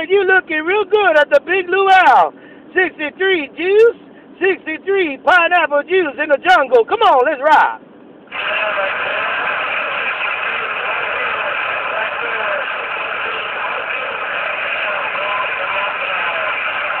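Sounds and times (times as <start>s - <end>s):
radio static hiss: 8.2s - 17.0s.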